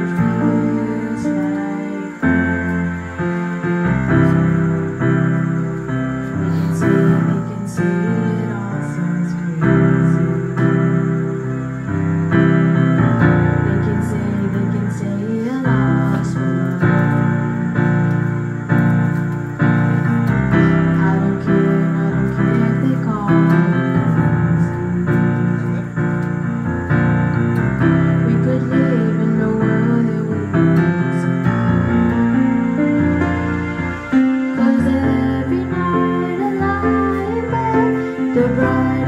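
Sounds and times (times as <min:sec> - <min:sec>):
girl singing: 0:00.0 - 0:03.1, 0:06.3 - 0:11.2, 0:13.2 - 0:17.7, 0:20.5 - 0:25.9, 0:27.8 - 0:32.5, 0:34.5 - 0:39.0
electronic keyboard chords: 0:00.0 - 0:39.0.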